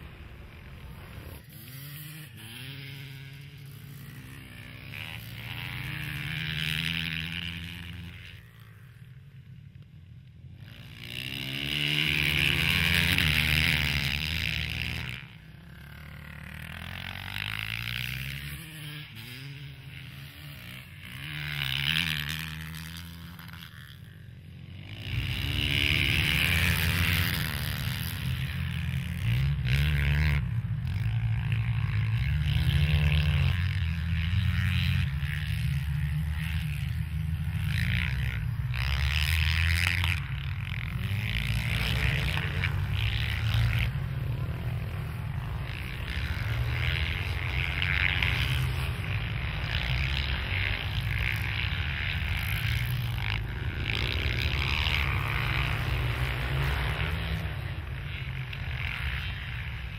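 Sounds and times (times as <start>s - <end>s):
dirt bike engines revving: 0.0s - 59.9s.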